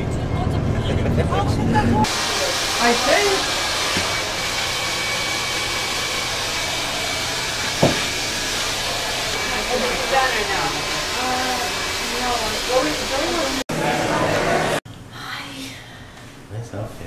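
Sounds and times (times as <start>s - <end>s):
hair dryer running: 2.0s - 14.8s
sharp knock: 7.8s - 8.1s.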